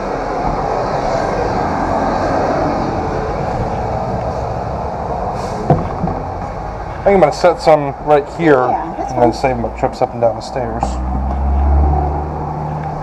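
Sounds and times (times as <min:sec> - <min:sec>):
loud rushing noise: 0:00.0 - 0:07.1
sharp knock: 0:05.7 - 0:06.2.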